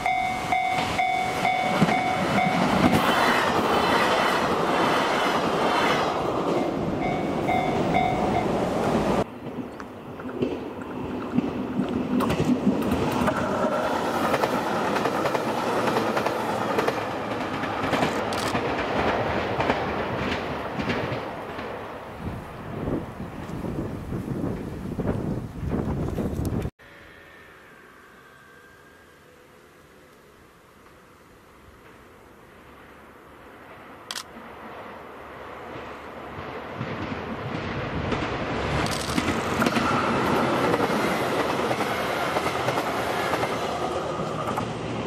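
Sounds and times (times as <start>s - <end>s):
diesel train passing: 0.0s - 25.9s, 26.8s - 45.0s.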